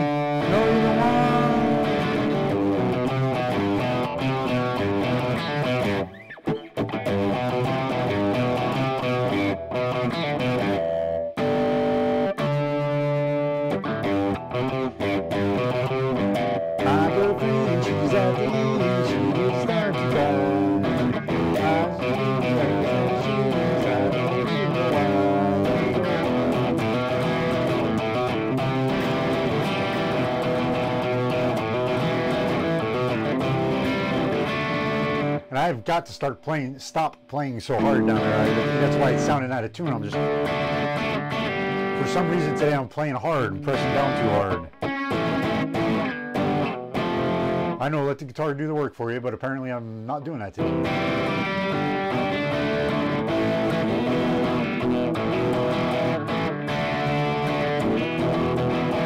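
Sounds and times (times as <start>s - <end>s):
electric guitar strumming rock chords: 0.0s - 48.2s, 50.6s - 59.0s.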